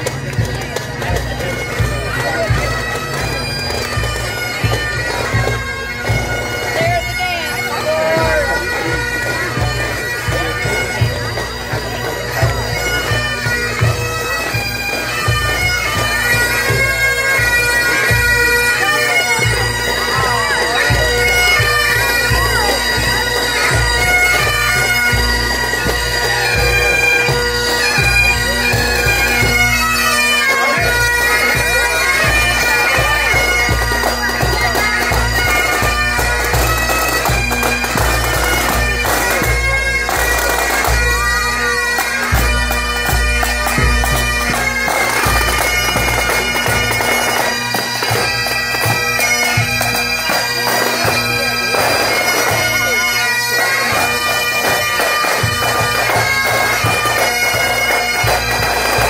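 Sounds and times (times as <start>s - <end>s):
bagpipes playing: 0.0s - 59.0s.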